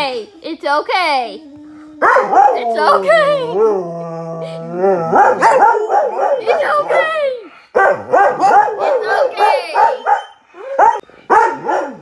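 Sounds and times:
dog howling and yipping: 1.3s - 11.0s.

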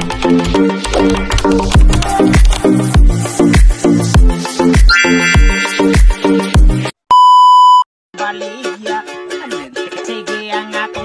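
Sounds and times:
electronic music with kick drum: 1.8s - 6.8s
electronic beep: 4.9s - 6.2s.

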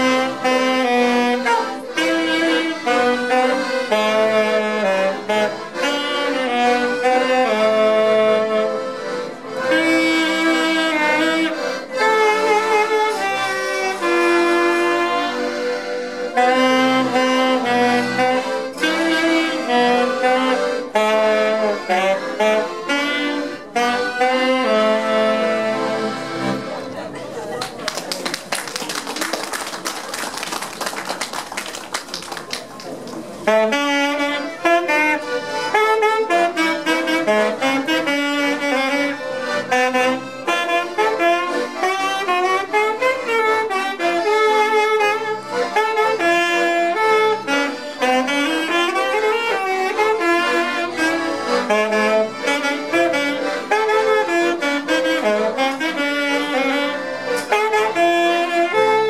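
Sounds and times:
accordions playing folk song: 0.0s - 59.0s
clapping: 27.6s - 33.2s.

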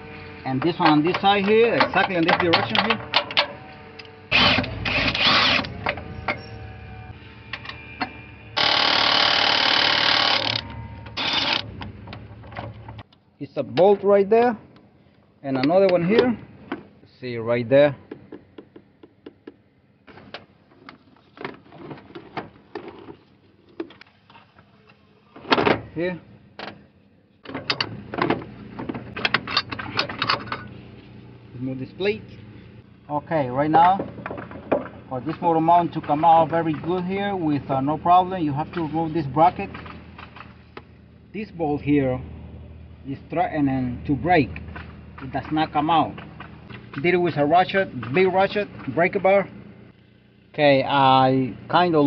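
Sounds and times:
impact wrench running: 4.3s - 6.6s, 8.6s - 11.7s.

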